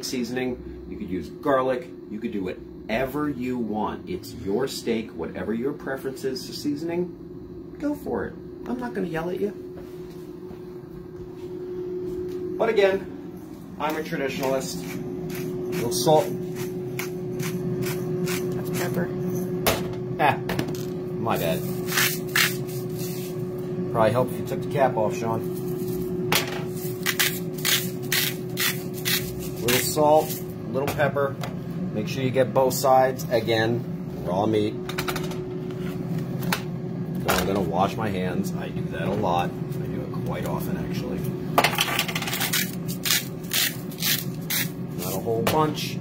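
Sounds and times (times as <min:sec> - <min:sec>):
steady low hum: 0:00.0 - 0:46.0
pepper grinder rasping: 0:14.4 - 0:19.0, 0:21.7 - 0:23.3, 0:26.8 - 0:30.4, 0:42.2 - 0:44.8.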